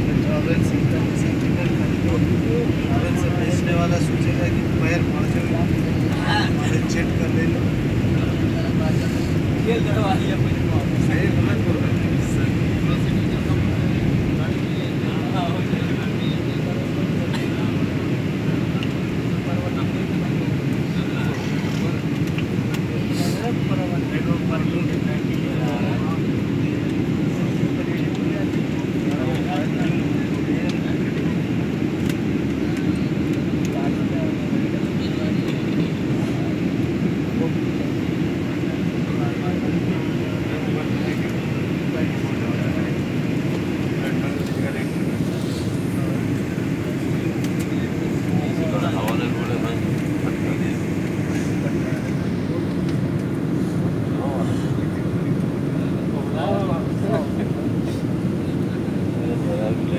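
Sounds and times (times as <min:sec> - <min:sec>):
airliner cabin rumble: 0:00.0 - 0:59.9
passengers talking: 0:00.0 - 0:59.9.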